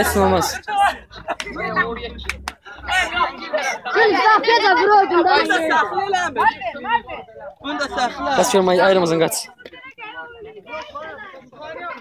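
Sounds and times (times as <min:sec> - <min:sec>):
young men talking and calling out: 0:00.0 - 0:12.0.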